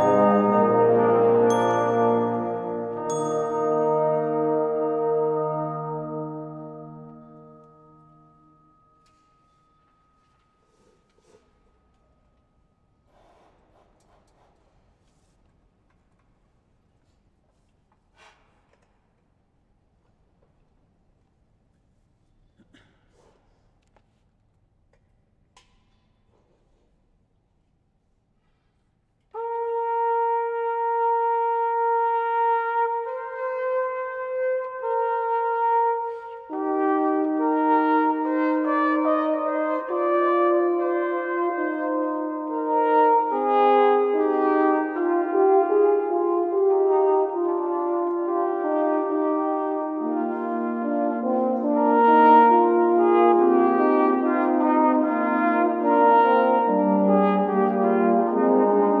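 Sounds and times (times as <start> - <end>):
brass ensemble playing slow music: 0.0 - 8.6, 29.3 - 59.0.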